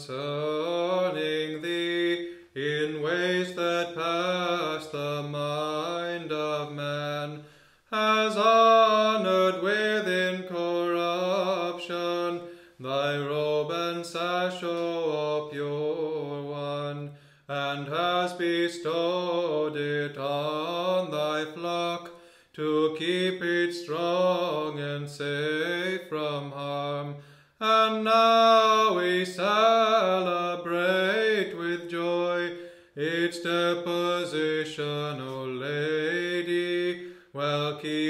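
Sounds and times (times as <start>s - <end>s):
person chanting a hymn: 0.0s - 38.0s
breaths: 2.2s - 2.6s, 7.4s - 8.0s, 12.4s - 12.8s, 17.1s - 17.5s, 22.1s - 22.6s, 27.2s - 27.6s, 32.5s - 33.0s, 37.0s - 37.4s.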